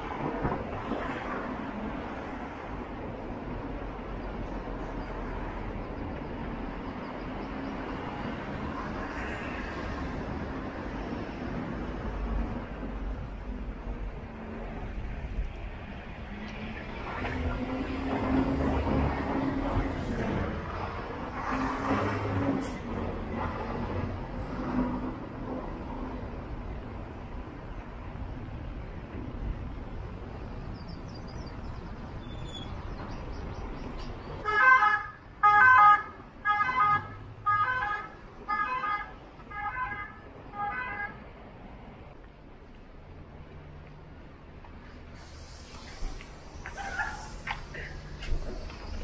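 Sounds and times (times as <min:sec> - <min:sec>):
road traffic passing: 0:00.0 - 0:49.0.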